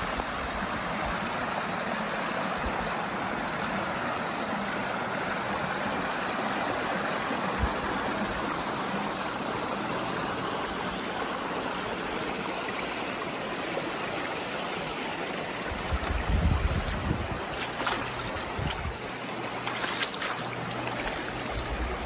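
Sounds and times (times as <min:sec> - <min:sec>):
river rushing over rocks: 0:00.0 - 0:22.0.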